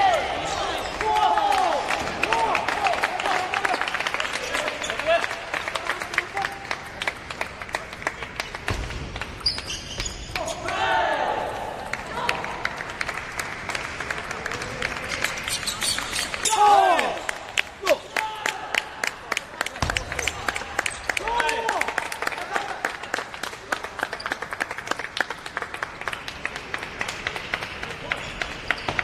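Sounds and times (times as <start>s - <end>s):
players shouting: 0.0s - 3.8s, 16.4s - 19.0s.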